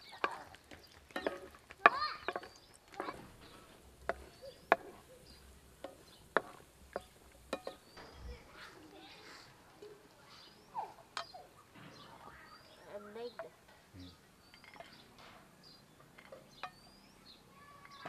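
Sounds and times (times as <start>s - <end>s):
wooden spatula scraping frying pan: 0.2s - 8.0s
faint bird chirps: 2.1s - 6.3s, 7.0s - 18.0s.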